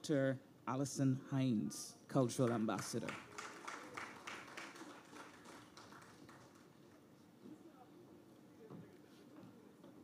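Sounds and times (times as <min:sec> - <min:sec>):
audience applause: 0:02.5 - 0:07.0.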